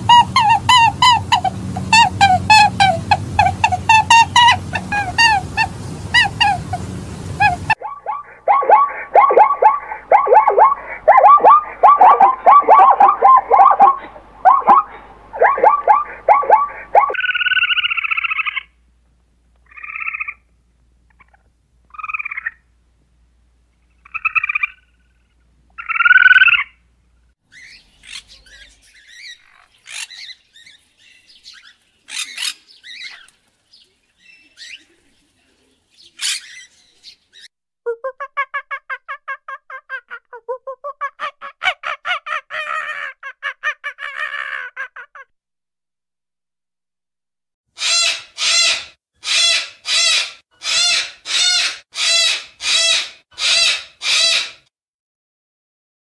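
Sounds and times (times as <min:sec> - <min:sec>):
macaw harsh squawks: 0:00.0 - 0:06.8, 0:07.4 - 0:18.7, 0:32.1 - 0:33.3, 0:47.8 - 0:54.7
zebra barking brays: 0:00.0 - 0:17.2.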